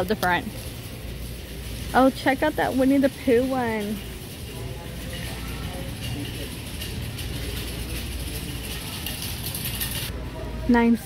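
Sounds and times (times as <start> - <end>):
store background rumble and hiss: 0.0 - 11.0.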